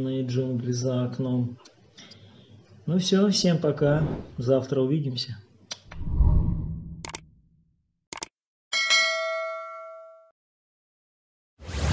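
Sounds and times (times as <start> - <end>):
bell chime ding: 8.7 - 10.4.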